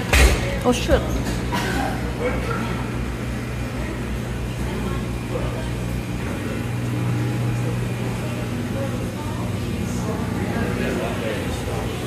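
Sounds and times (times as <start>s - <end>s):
indistinct voices: 0.0s - 12.0s
low machine hum: 0.0s - 12.0s.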